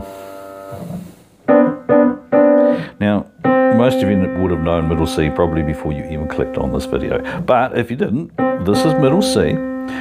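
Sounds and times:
piano single notes: 0.0s - 7.4s, 8.3s - 10.0s.

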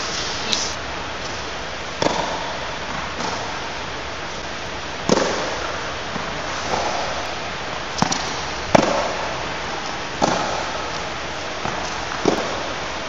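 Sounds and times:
steady hiss: 0.0s - 1.6s
tennis ball bouncing on court: 2.0s - 3.6s, 5.0s - 6.9s, 8.0s - 9.2s, 10.2s - 10.8s, 11.6s - 12.6s
tennis ball struck by rackets: 5.0s - 7.0s, 10.2s - 10.8s.

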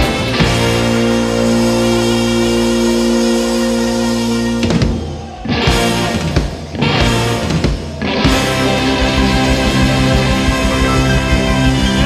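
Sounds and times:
rock band sustained chord: 0.0s - 12.0s.

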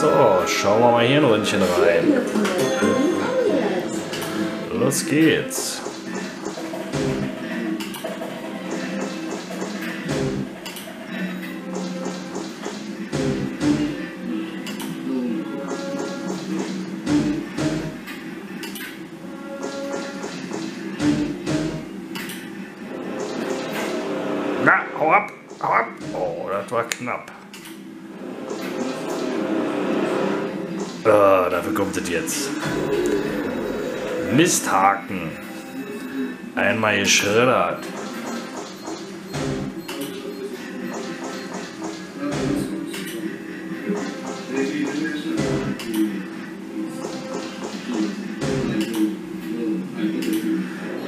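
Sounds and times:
slot machine game music: 0.0s - 6.1s.

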